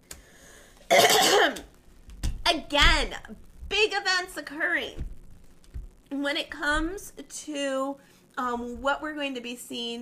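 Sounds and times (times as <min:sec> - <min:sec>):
woman clearing her throat: 0:00.9 - 0:01.6.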